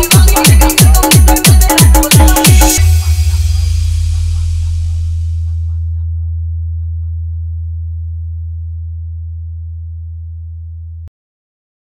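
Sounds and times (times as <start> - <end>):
deep sub-bass tone: 0.0 - 11.1.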